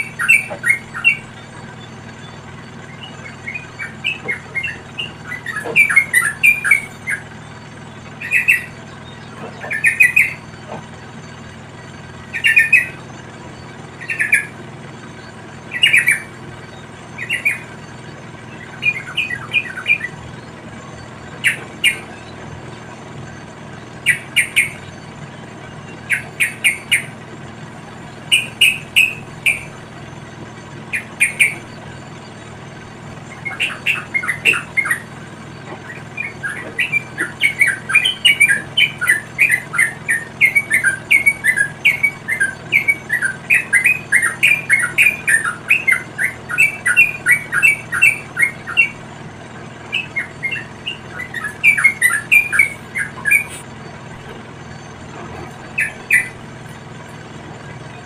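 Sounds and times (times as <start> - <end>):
bulbuls chirping: 0.0 - 58.0.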